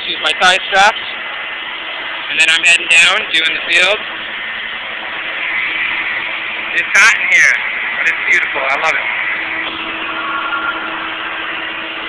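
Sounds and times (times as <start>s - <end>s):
small vehicle engine running: 0.0s - 12.0s
steady hum: 0.0s - 12.0s.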